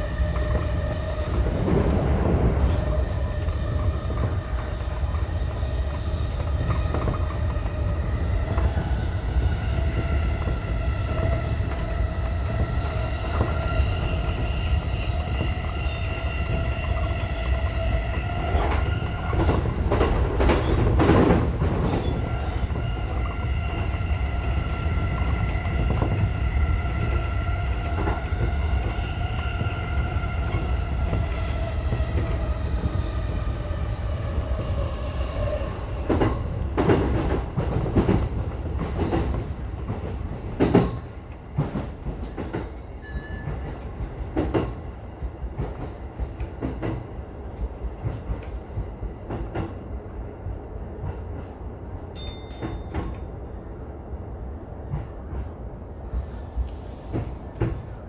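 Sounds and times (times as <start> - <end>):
wheels rumbling on rail: 0.0 - 58.0.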